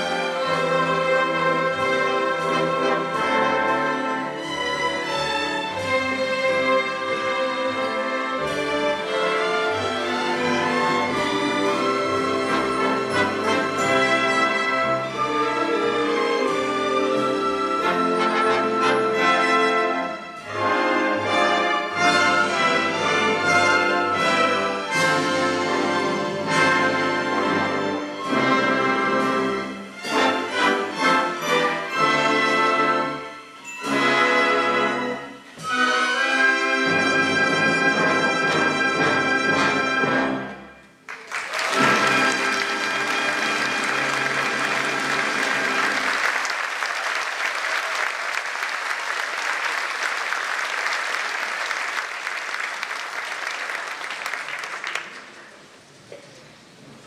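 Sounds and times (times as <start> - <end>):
orchestra playing chords: 0.0 - 56.0
audience applause: 41.1 - 55.8.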